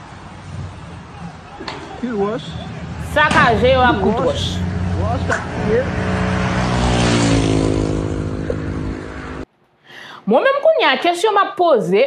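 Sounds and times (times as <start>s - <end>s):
heavy vehicle passing: 0.0s - 9.5s.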